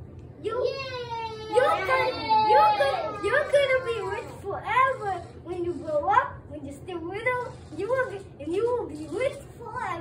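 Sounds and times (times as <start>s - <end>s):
child's high-pitched calls: 0.4s - 5.1s.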